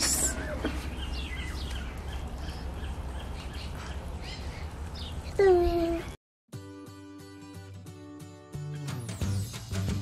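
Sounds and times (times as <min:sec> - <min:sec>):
small birds chirping: 0:00.0 - 0:06.2.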